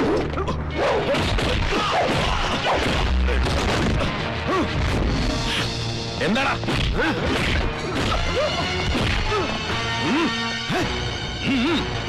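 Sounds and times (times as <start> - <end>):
dramatic background music: 0.0 - 12.0
punch sound effects: 1.1 - 4.1.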